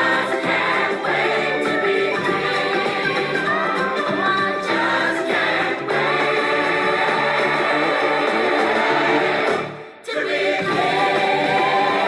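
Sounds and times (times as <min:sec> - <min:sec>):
backing choir: 0:00.0 - 0:12.0
instrumental accompaniment: 0:00.0 - 0:12.0.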